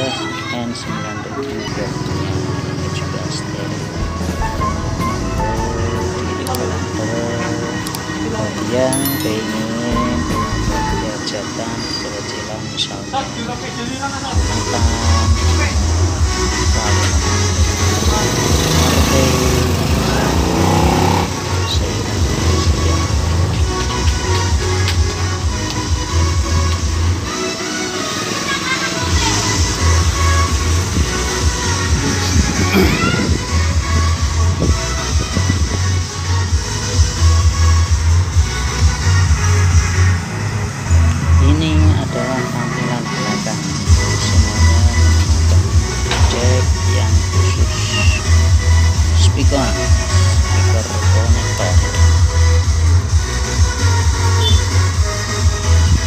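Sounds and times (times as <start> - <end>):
bass-heavy music through speakers: 1.0 - 13.2, 14.2 - 56.0
rising electronic whine: 3.6 - 7.2.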